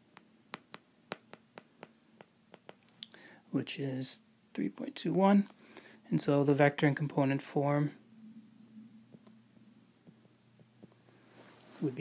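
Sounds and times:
stylus tapping tablet screen: 0.0s - 2.9s, 10.0s - 11.0s
faint electrical hum: 0.0s - 12.0s.

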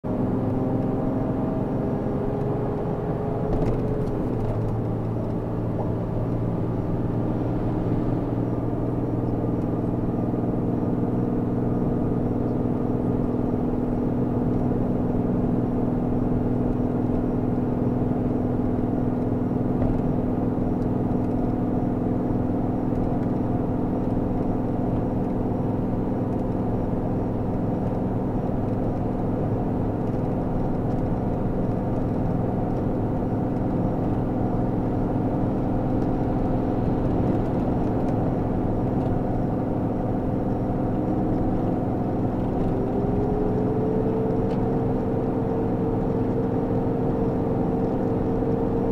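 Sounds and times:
vehicle engine accelerating: 0.0s - 48.9s
tyre road noise: 0.1s - 48.9s.

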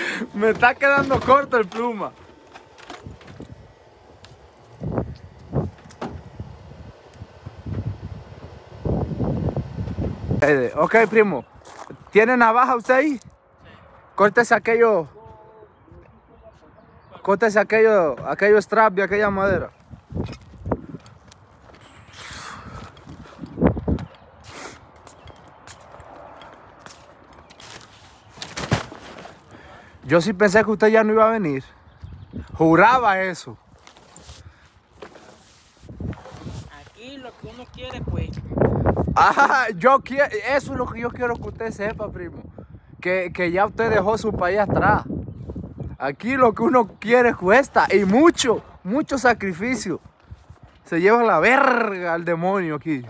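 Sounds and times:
tools clattering: 0.5s - 3.6s
footsteps on gravel and concrete: 10.6s - 13.4s, 19.7s - 30.2s, 33.6s - 38.5s.

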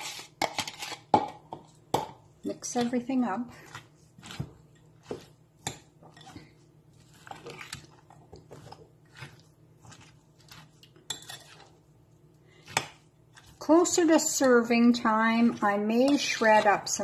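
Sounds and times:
utensil scraping glass bowl: 3.5s - 11.8s, 12.7s - 17.0s.

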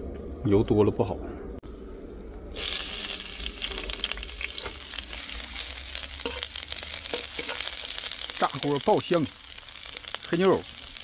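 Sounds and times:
garlic sizzling in hot oil: 2.6s - 11.0s
metal ladle scraping pan: 6.2s - 7.8s.

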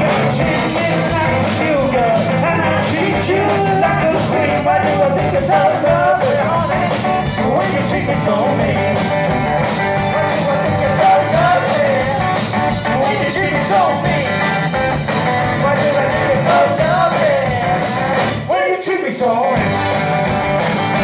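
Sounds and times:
bass guitar: 0.0s - 18.6s, 19.2s - 21.0s
acoustic guitar: 0.0s - 21.0s
drum kit: 0.0s - 21.0s.

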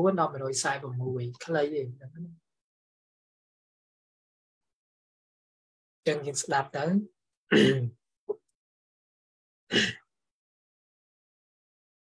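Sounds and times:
man clearing his throat: 7.5s - 7.9s, 9.7s - 10.0s.

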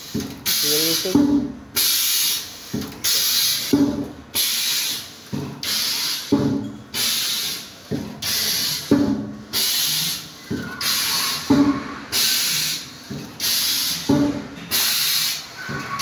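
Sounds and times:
machine press knocking: 1.1s - 1.6s, 3.7s - 4.2s, 6.3s - 6.7s, 8.9s - 9.4s, 10.5s - 12.3s, 14.0s - 15.0s
air hissing: 7.0s - 16.0s.

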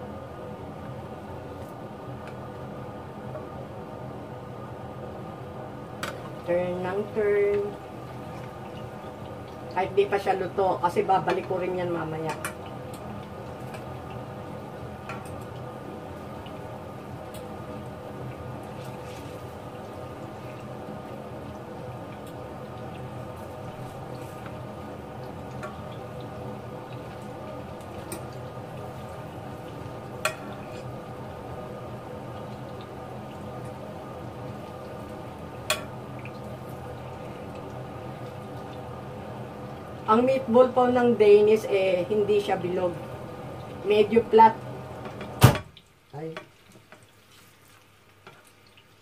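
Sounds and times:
meatballs sizzling in a pan: 1.2s - 49.0s.

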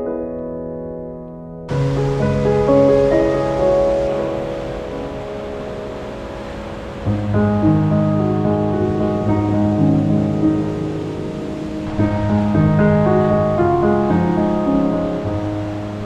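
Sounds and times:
long-held keyboard chords: 0.0s - 16.0s.

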